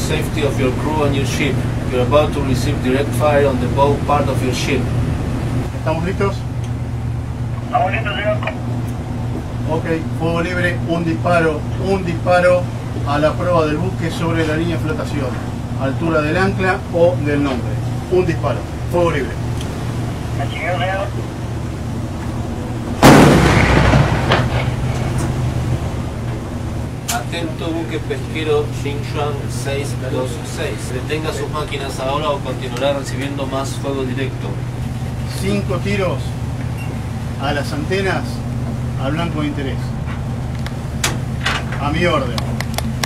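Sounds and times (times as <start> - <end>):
ship engine humming: 0.0 - 43.0
cannon shot: 23.0 - 25.3.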